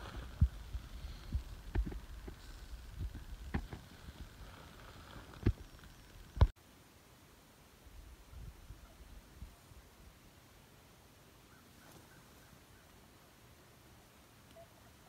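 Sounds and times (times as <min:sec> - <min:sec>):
low thumps and rumble on microphone: 0:00.0 - 0:04.5.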